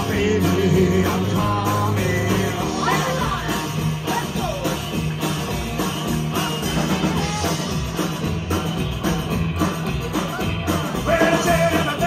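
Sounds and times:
live rockabilly band playing: 0.0s - 12.0s.

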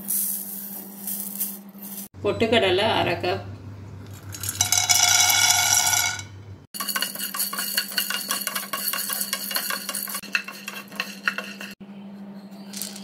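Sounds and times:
spatula stirring chickpeas in a pan: 6.8s - 11.8s.

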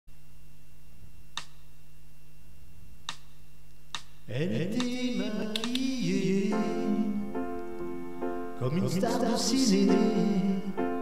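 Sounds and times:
faint high whine: 0.1s - 5.4s
low electrical hum: 0.1s - 11.0s
short sharp clicks: 1.4s - 1.7s, 3.1s - 4.2s, 4.8s - 6.0s
person singing: 4.3s - 7.6s, 8.6s - 11.0s.

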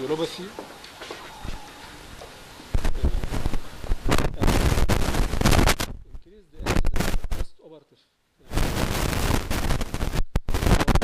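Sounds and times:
loud crackling noise: 0.0s - 7.6s, 8.4s - 11.0s.

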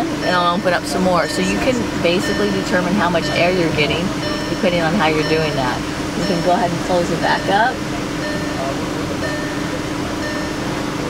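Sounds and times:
car engine hum: 0.0s - 11.0s
car warning chime beeping: 0.0s - 11.0s.

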